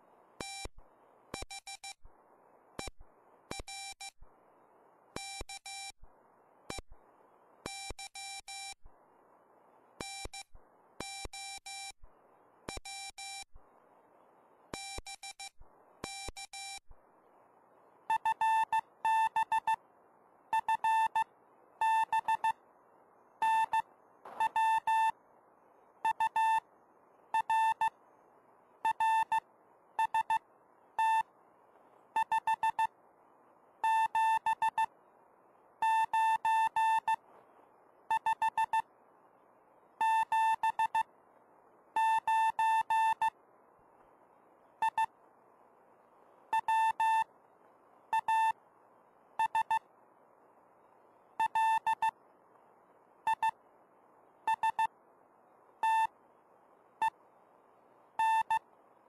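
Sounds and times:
faint receiver hiss: 0.0s - 59.0s
morse code beeping tone: 20.6s - 22.6s, 23.4s - 25.1s, 26.1s - 26.6s, 27.4s - 27.9s, 28.9s - 29.4s, 30.0s - 30.4s, 31.0s - 31.2s, 32.2s - 32.9s, 35.8s - 37.2s, 42.0s - 43.3s, 46.6s - 47.3s, 48.2s - 48.6s, 49.4s - 49.8s, 51.4s - 52.1s, 54.5s - 54.9s, 55.8s - 56.1s, 58.2s - 58.6s.

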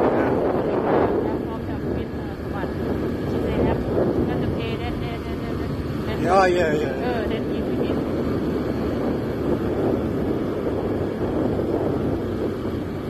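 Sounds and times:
small motorbike running: 0.0s - 13.0s
wind on microphone: 0.0s - 13.0s
faint talking: 4.4s - 8.0s.

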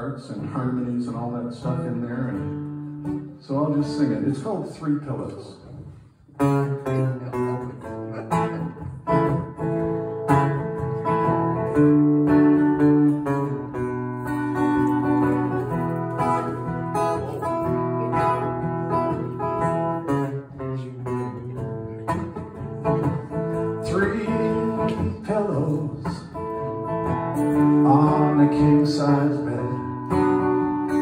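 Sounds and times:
acoustic guitar strumming: 0.0s - 4.3s, 6.4s - 31.0s.

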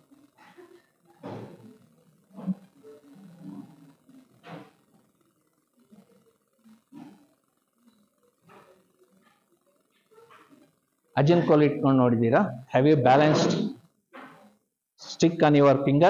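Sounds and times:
muffled video audio over loudspeakers: 0.0s - 7.3s, 7.9s - 16.0s.

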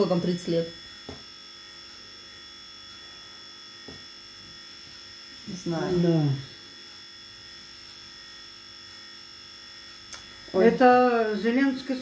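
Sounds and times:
electrical buzz with whine: 0.0s - 12.0s.

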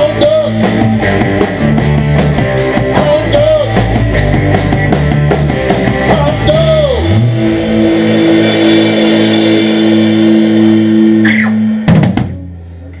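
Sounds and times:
rock band playing: 0.0s - 13.0s.

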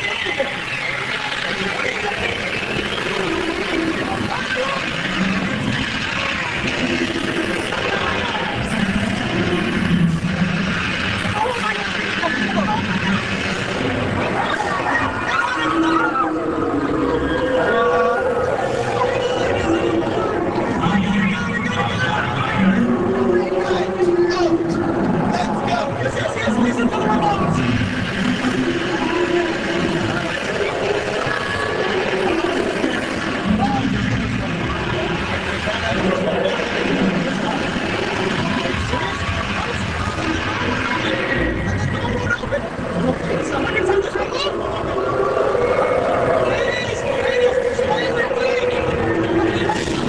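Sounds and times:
indistinct voices: 0.0s - 50.0s
tram engine hum: 0.0s - 50.0s
road noise: 16.3s - 50.0s.

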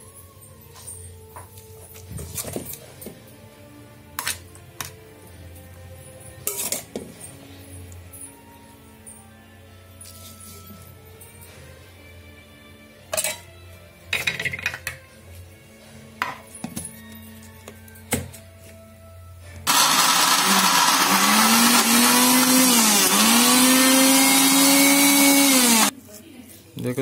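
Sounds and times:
spoon clinking against steel bowls: 6.3s - 8.0s, 13.1s - 15.1s
mixer grinder motor running: 19.7s - 25.9s.

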